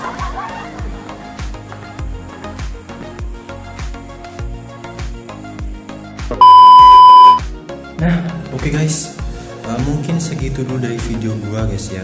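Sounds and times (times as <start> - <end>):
background music with steady beat: 0.0 - 12.0
loud steady high test tone beep: 6.4 - 7.4.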